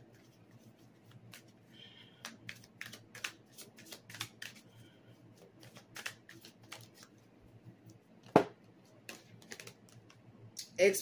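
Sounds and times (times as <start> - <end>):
cards being handled: 0.1 - 7.2, 7.9 - 10.2.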